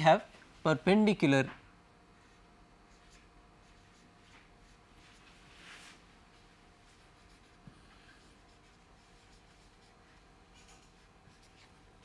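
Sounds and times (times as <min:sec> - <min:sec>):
marker writing on whiteboard: 0:06.9 - 0:12.0.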